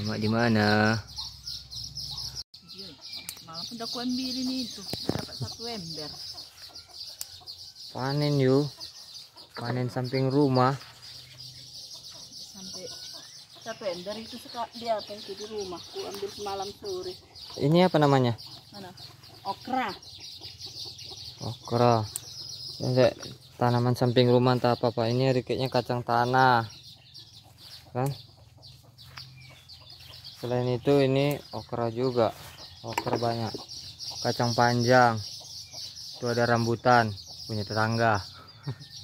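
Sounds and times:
faint chicken clucking: 0.0s - 39.0s.

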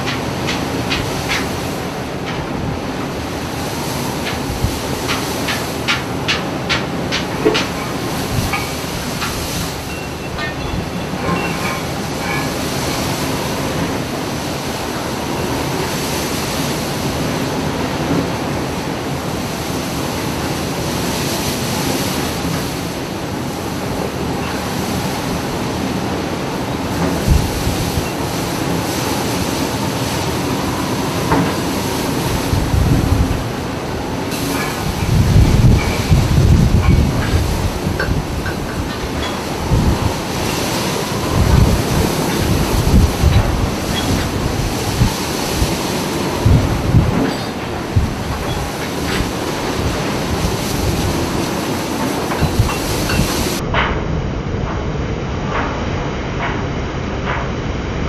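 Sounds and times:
waves breaking: 0.0s - 58.0s
wind buffeting microphone: 0.0s - 58.0s
wind roaring: 0.0s - 58.0s.

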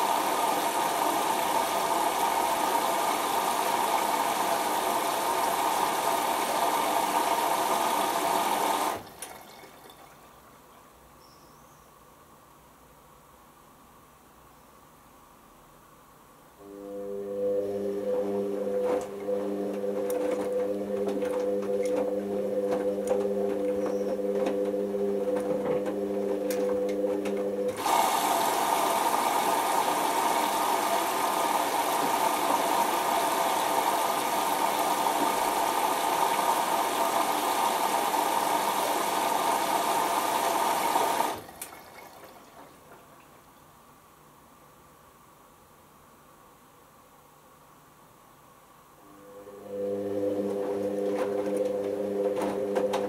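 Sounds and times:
water hissing through inlet valve: 0.0s - 9.7s, 16.8s - 42.7s
washing machine motor humming: 0.0s - 10.1s, 16.6s - 43.2s, 49.1s - 53.0s.

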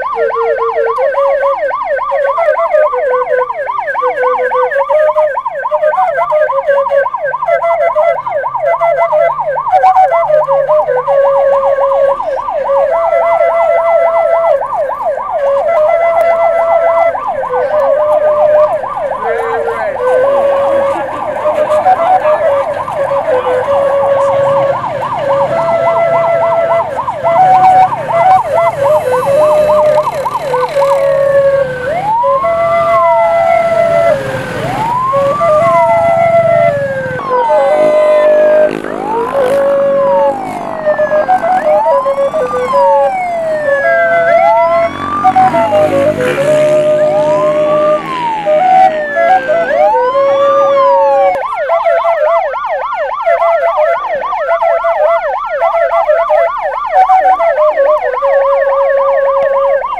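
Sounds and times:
siren wailing: 0.0s - 59.9s
siren yelping: 0.0s - 59.9s
electronic notes stepping in pitch: 15.4s - 51.7s.

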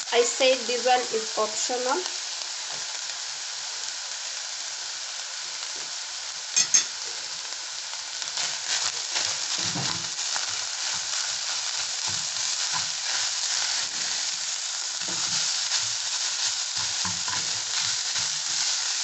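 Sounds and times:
food sizzling in hot oil: 0.0s - 19.0s
spatula scraping in pan: 8.3s - 19.0s.

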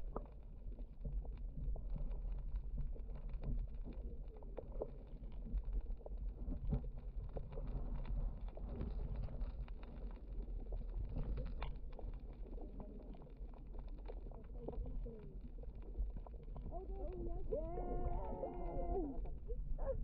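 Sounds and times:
low underwater rumble: 0.0s - 20.0s.

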